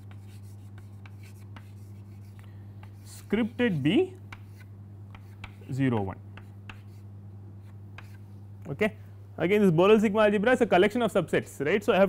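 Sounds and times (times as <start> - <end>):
chalk tapping and scraping on blackboard: 0.0 - 8.3
steady low hum: 0.0 - 12.0.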